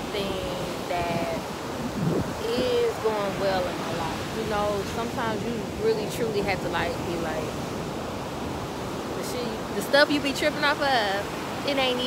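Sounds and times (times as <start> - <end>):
woman's voice: 0.0 - 1.5, 2.3 - 7.6, 9.1 - 12.0
ocean surf washing onto beach: 0.0 - 12.0
wind on microphone: 0.0 - 12.0.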